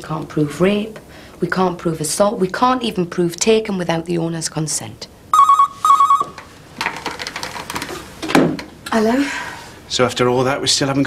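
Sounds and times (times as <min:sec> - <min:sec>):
telephone ringing: 0:05.3 - 0:06.5
faint rustling and knocks: 0:06.0 - 0:08.8.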